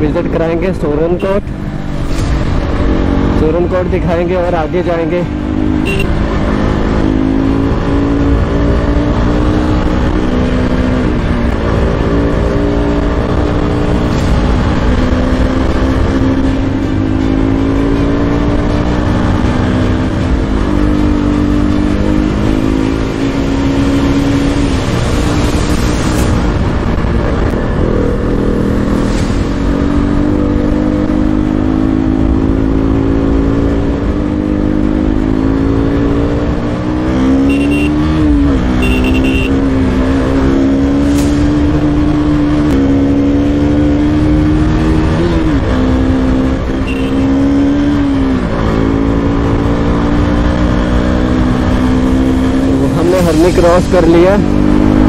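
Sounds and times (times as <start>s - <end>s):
low wind rumble: 0.0s - 55.0s
motorcycle engine accelerating: 0.0s - 55.0s.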